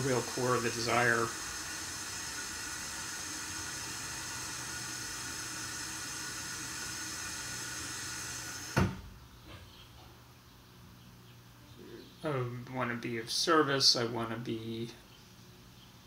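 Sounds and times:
steady hiss: 0.0 - 9.1.

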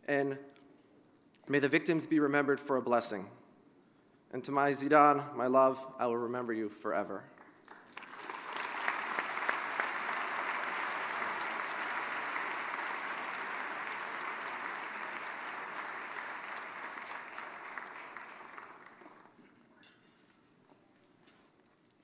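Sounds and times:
large audience applauding: 7.4 - 19.4.

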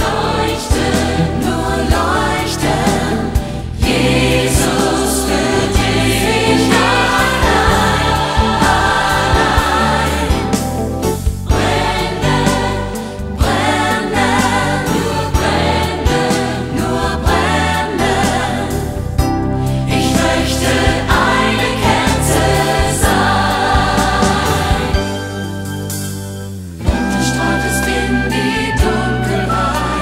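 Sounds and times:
choir singing: 0.0 - 25.6, 26.9 - 30.0
instrumental backing: 0.0 - 30.0.

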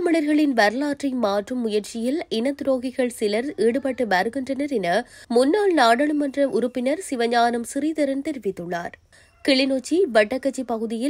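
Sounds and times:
newsreader speaking: 0.0 - 11.0.

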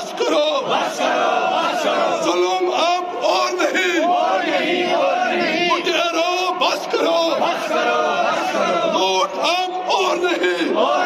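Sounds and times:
crowd of men shouting slogans: 0.0 - 11.0.

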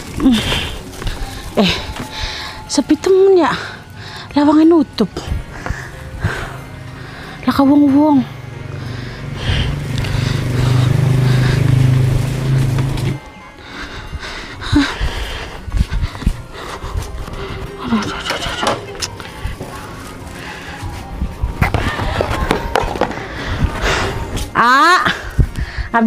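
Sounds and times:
small engine running: 8.2 - 13.3.

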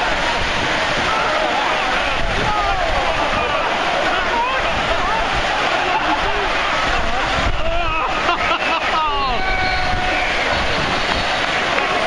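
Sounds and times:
wind on microphone: 0.0 - 8.4, 9.0 - 12.0
crowd shouting: 0.0 - 12.0
heavy rain: 0.0 - 12.0.

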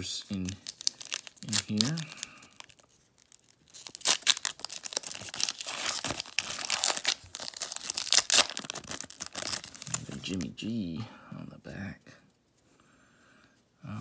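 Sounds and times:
foil wrapper crinkling: 0.3 - 10.5.

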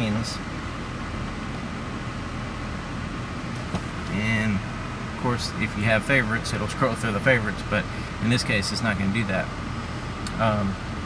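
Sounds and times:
air conditioning fan blowing: 0.0 - 11.0
car engine idling: 0.0 - 11.0.

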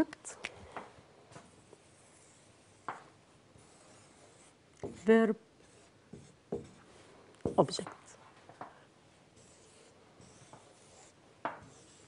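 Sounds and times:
marker squeaking on whiteboard: 1.4 - 3.0, 9.3 - 12.0.

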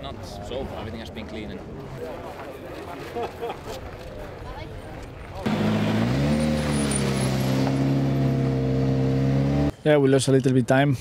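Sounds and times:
car engine starting and idling: 5.5 - 9.7.

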